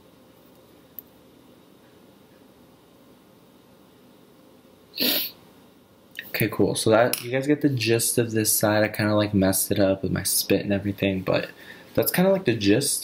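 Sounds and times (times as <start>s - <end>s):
sharp burst of breath: 5.0s - 5.4s.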